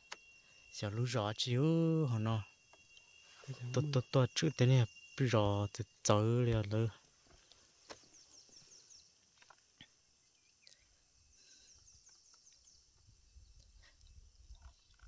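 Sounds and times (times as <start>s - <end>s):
bird chirp: 0.0s - 15.0s
insects chirring: 0.0s - 15.0s.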